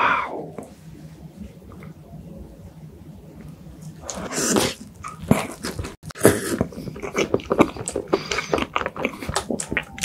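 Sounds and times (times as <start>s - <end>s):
wet biting and chewing: 4.1s - 10.0s.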